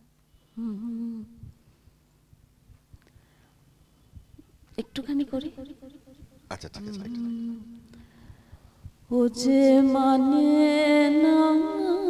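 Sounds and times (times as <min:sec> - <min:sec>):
person humming: 0:06.8 - 0:07.9.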